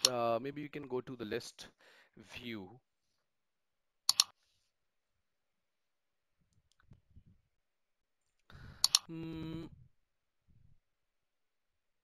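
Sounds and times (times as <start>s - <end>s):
mouse button clicks: 8.8s - 9.1s.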